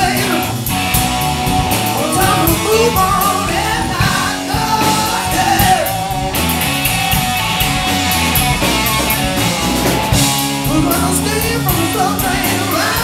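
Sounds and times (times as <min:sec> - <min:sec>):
bass line: 0:00.0 - 0:13.0
drum kit cymbals: 0:00.0 - 0:13.0
electric guitars: 0:00.0 - 0:13.0.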